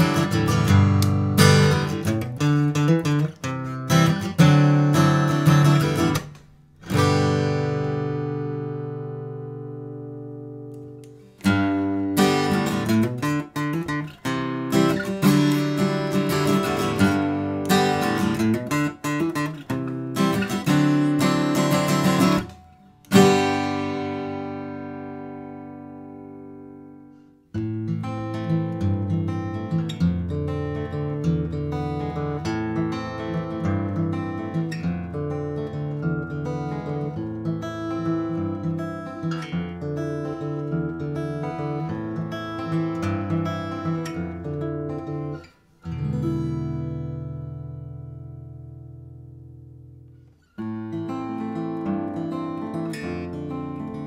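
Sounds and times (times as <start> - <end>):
acoustic guitar strummed chords: 0.0 - 54.0
fingerpicked acoustic guitar notes: 0.0 - 54.0.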